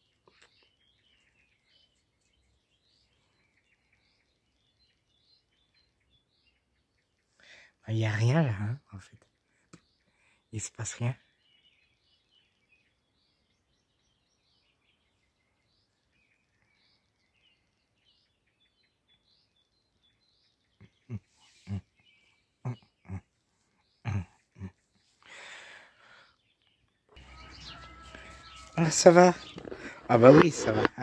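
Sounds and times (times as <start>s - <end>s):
distant birds chirping: 0.0s - 31.0s.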